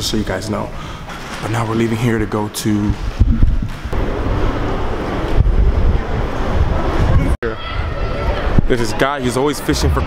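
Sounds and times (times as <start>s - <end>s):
wind rumbling on microphone: 2.9s - 8.7s.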